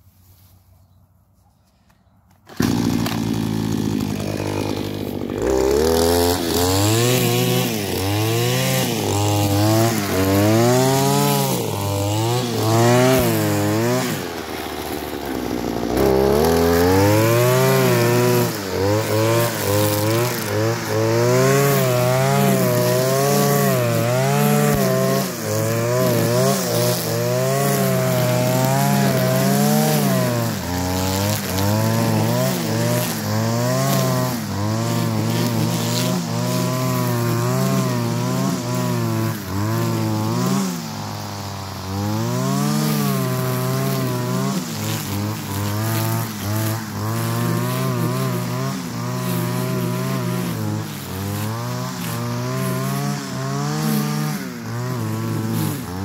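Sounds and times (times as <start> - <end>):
string trimmer cutting grass: 2.2 - 56.0.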